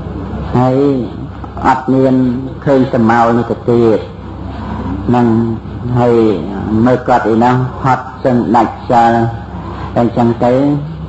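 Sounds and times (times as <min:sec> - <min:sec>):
steady low hum: 0:00.0 - 0:11.0
man giving a sermon: 0:00.5 - 0:04.2, 0:04.8 - 0:11.0.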